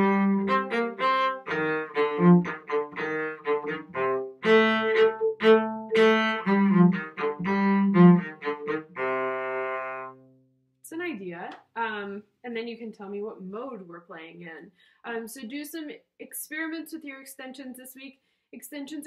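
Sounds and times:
solo cello melody: 0.0 - 10.5.

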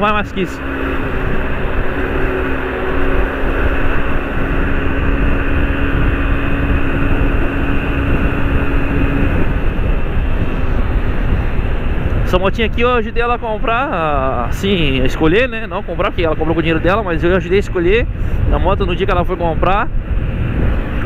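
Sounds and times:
motorcycle engine running: 0.0 - 21.0
wind rush on microphone: 0.0 - 21.0.

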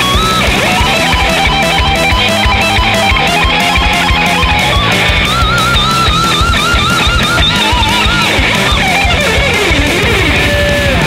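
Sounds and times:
distorted electric lead guitar: 0.0 - 11.0
heavy rock band with drums: 0.0 - 11.0.

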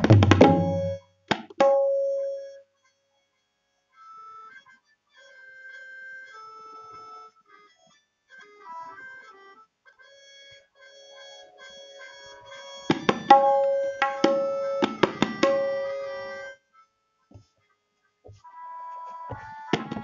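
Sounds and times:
harmonium-like repeating melody: 0.0 - 1.5, 8.5 - 16.6
tabla stroke: 0.0 - 2.5, 12.9 - 16.2.

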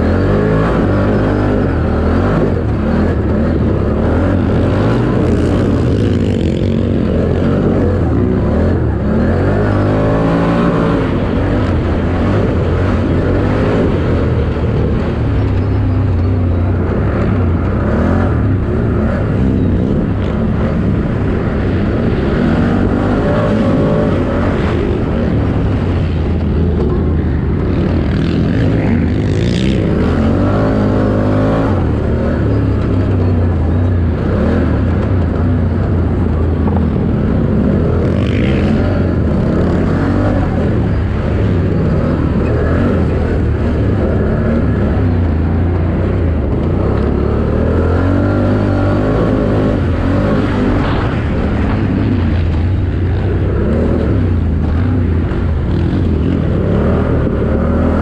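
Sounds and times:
quad engine revving: 0.0 - 58.0.

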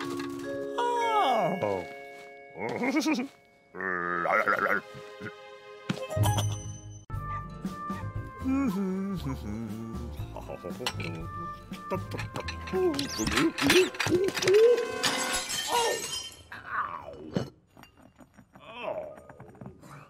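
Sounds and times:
wordless vocal noises: 8.4 - 12.1
tableware clinking: 12.1 - 16.5.

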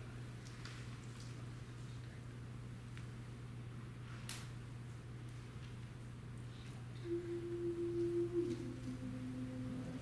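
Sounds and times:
pitch pipe notes: 7.0 - 10.0.

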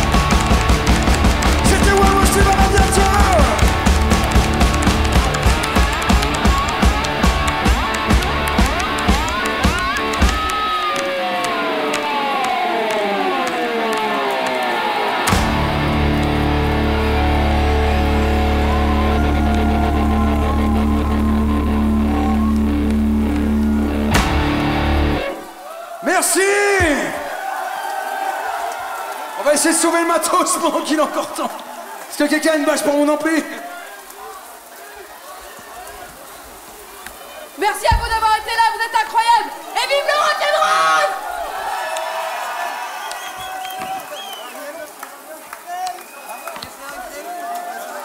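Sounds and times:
driving drum beat: 0.0 - 10.6
electric guitar: 0.0 - 25.6.

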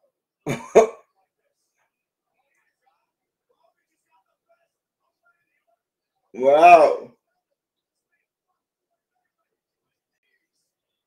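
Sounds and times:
man coughing: 0.5 - 1.1.

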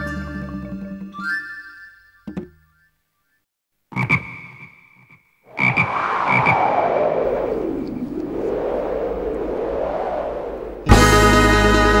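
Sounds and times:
frog croaking: 3.9 - 6.5
rushing noise sweeping in pitch: 5.5 - 11.4.

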